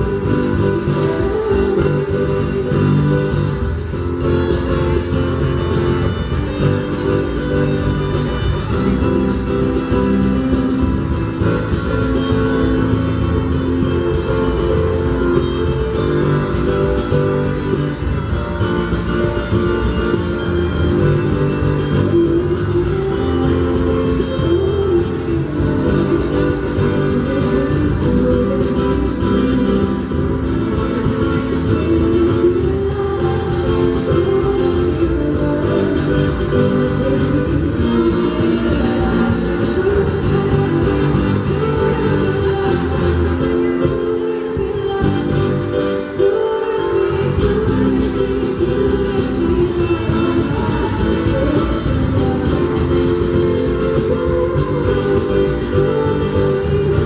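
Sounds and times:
acoustic guitars picked and strummed: 0.0 - 57.0.

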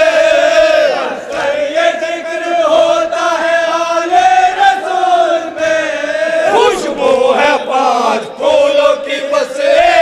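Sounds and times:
men chanting together: 0.0 - 10.0.

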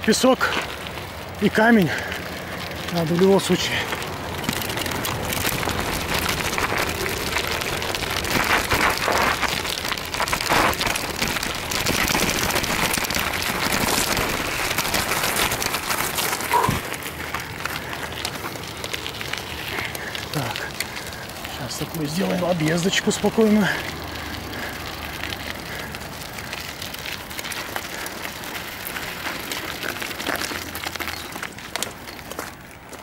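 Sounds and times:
bicycle crunching over gravel: 0.0 - 33.0.

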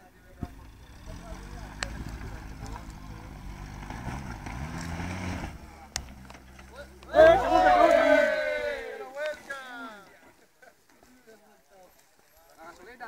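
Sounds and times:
off-road vehicle engine revving: 0.0 - 8.2.

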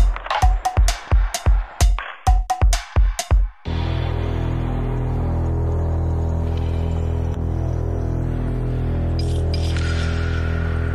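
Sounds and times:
low bass drone: 3.7 - 10.9.

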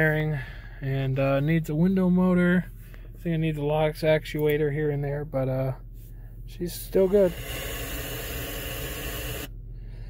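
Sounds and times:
low engine rumble: 0.0 - 10.0
car radio static hiss: 6.9 - 9.5.

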